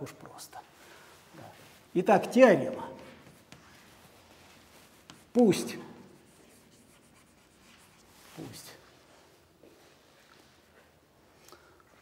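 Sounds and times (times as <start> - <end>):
chalk scratching on blackboard: 2.7 - 8.8.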